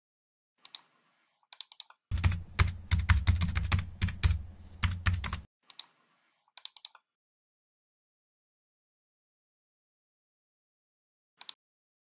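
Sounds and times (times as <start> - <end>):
keyboard typing: 1.5 - 5.9.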